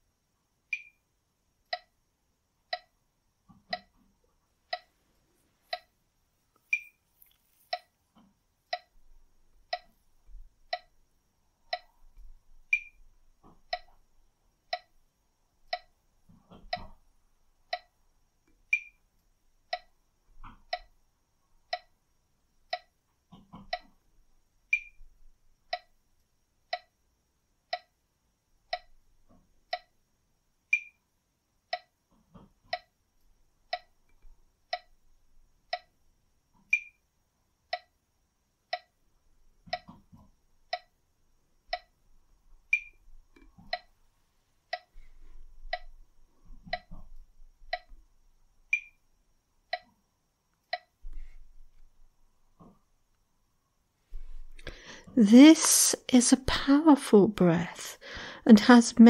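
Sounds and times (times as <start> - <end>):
metronome clicking: 0.7 - 1.0, 1.7 - 2.0, 2.7 - 3.0, 3.7 - 3.9, 4.7 - 4.9, 5.7 - 5.9, 6.7 - 7.0, 8.7 - 8.9, 9.7 - 10.0, 10.7 - 11.0, 11.7 - 11.9, 12.7 - 13.0, 13.7 - 14.0, 14.7 - 15.0, 15.7 - 16.0, 17.7 - 17.9, 18.7 - 19.0, 19.7 - 19.9, 20.7 - 20.9, 21.7 - 21.9, 22.7 - 22.9, 23.7 - 23.9, 24.7 - 25.0, 25.7 - 25.9, 26.7 - 26.9, 27.7 - 28.0, 28.7 - 29.0, 29.7 - 29.9, 30.7 - 31.0, 33.7 - 35.0, 35.7 - 35.9, 36.7 - 37.0, 37.7 - 37.9, 38.7 - 39.0, 40.7 - 40.9, 41.7 - 41.9, 42.7 - 43.9, 44.7 - 44.9, 46.7 - 46.9, 47.7 - 48.0, 48.7 - 49.0, 49.7 - 49.9, 50.6 - 51.0.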